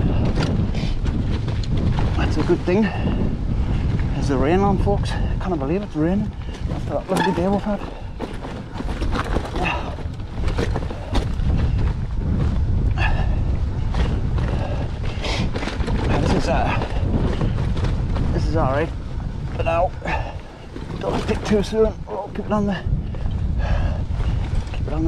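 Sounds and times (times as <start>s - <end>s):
bike rattling over stony trail: 0.0s - 25.0s
wind rumble on microphone: 0.0s - 25.0s
rider's voice: 2.1s - 3.2s, 4.1s - 8.1s, 9.6s - 10.0s, 16.0s - 17.1s, 18.3s - 20.4s, 21.0s - 23.0s, 24.8s - 25.0s.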